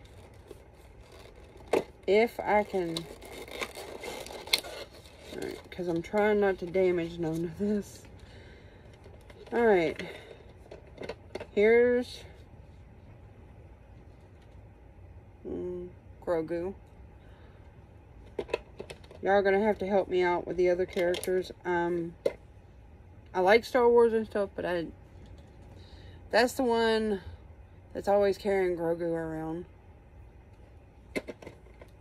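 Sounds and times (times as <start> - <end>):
packaging scraping and rustling: 0.0 - 8.2.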